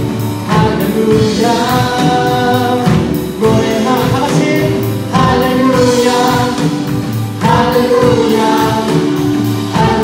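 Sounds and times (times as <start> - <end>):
live band: 0.0 - 10.0.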